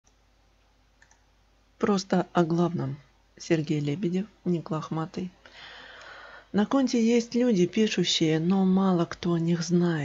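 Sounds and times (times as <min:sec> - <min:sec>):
low background hiss: 0:00.1 - 0:10.0
faint small clicks: 0:01.0 - 0:01.3, 0:06.0 - 0:06.2
person reading aloud: 0:01.8 - 0:05.4, 0:06.5 - 0:10.0.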